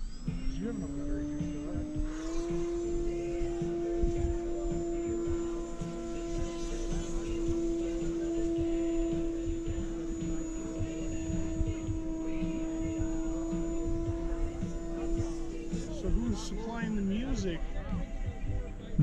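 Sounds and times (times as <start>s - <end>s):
fainter higher tones: 0.0s - 19.0s
steady drone: 0.0s - 19.0s
uneven low rumble: 0.0s - 19.0s.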